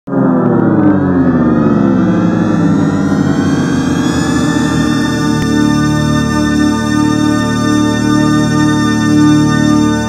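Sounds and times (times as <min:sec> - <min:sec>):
electronic logo chord sliding down: 0:00.1 - 0:10.0.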